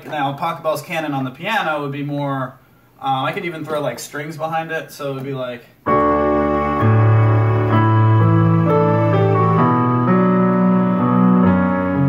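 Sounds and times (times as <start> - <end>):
digital piano with strings chords: 5.8 - 12.0.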